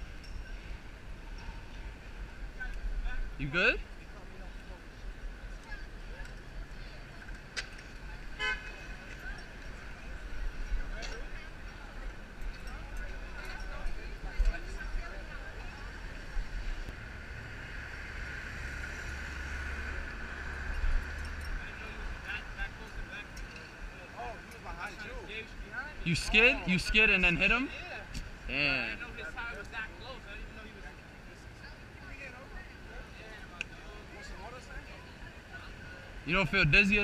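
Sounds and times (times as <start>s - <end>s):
car horn tooting: 8.4s - 8.8s
cars passing: 14.6s - 37.0s.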